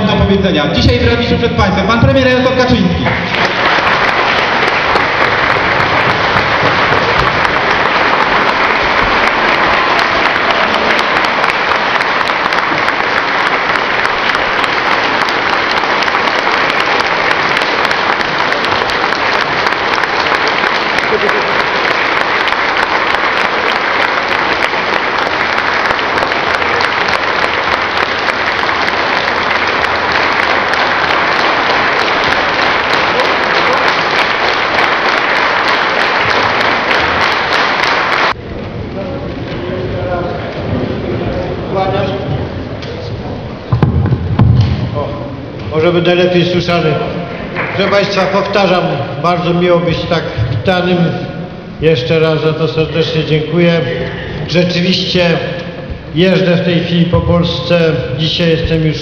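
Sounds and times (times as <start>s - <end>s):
audience applauding: 2.9s - 38.4s.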